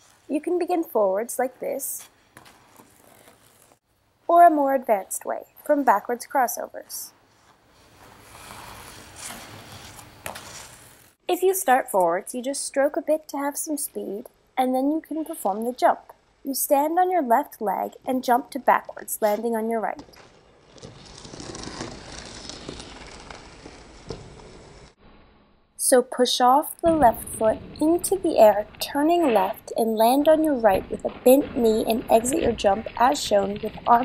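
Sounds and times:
ice skates scraping on ice: 2.0 - 3.8, 7.5 - 11.2, 20.1 - 25.0.

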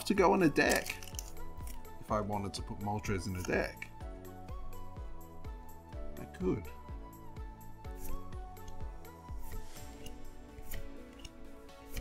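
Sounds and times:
soft music with low beat: 0.0 - 12.0
trading cards being shuffled: 0.5 - 2.0.

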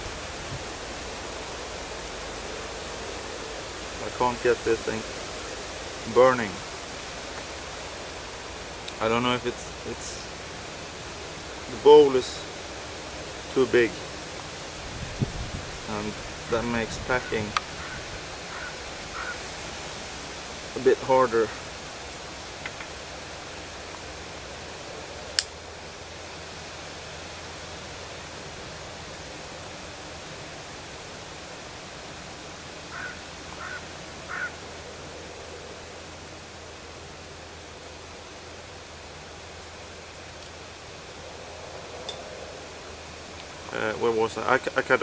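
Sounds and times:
outdoor background hiss: 0.0 - 45.0.

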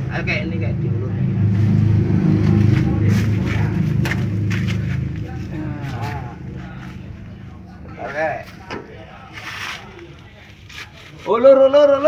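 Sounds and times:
truck engine idling: 0.0 - 11.4.

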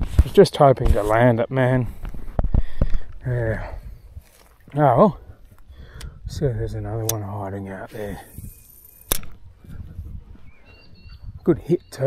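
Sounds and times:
fishing reel click: 7.9 - 9.4.

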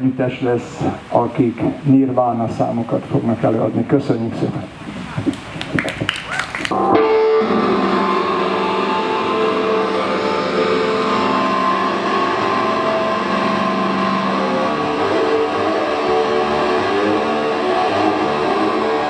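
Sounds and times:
electric guitar with long notes: 4.5 - 19.0.

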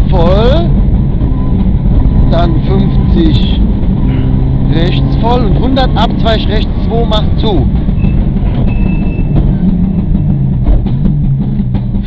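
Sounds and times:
rally car engine running hard: 0.0 - 12.0.

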